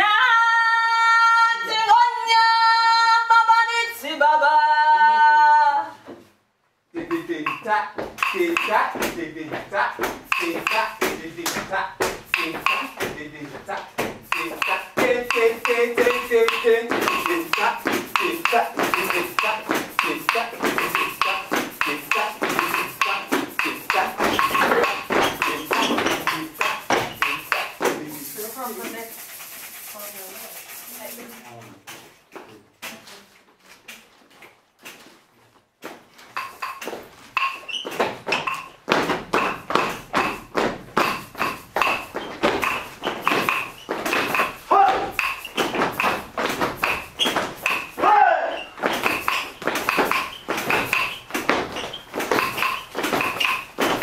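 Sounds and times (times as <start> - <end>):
dancers beating hands and feet: 7.0 - 29.1, 33.8 - 54.0
voices: 48.0 - 48.7.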